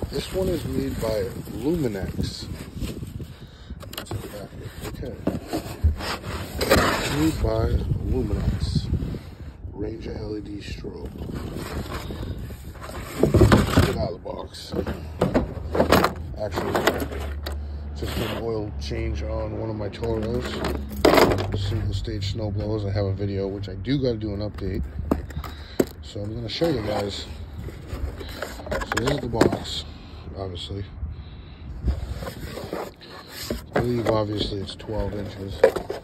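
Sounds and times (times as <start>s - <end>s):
cardboard box scraping and knocking: 0.0s - 8.9s, 11.1s - 18.6s, 20.0s - 22.0s, 24.7s - 29.8s, 31.8s - 36.0s
wind rumble: 0.0s - 16.6s.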